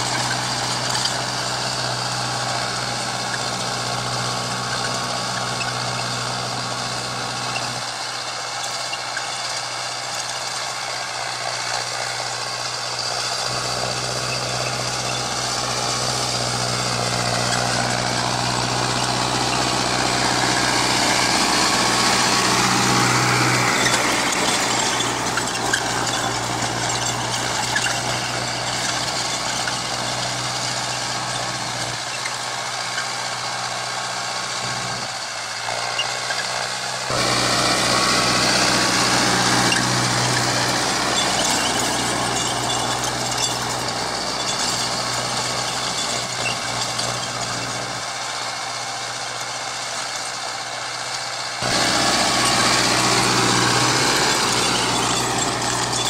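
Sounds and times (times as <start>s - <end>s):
tractor diesel engine running: 0.0s - 56.0s.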